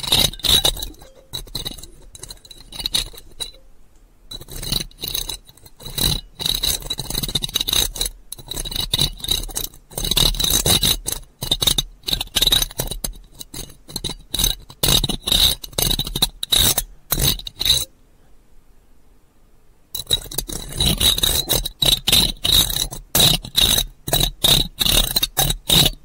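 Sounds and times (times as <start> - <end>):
scratching on an object: 0.0 - 3.6, 4.3 - 17.9, 20.0 - 26.0.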